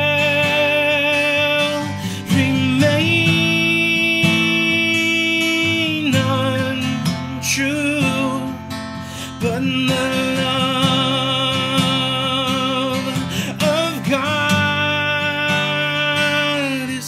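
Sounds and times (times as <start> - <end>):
man singing: 0.0 - 17.0
strummed acoustic guitar: 0.0 - 17.0.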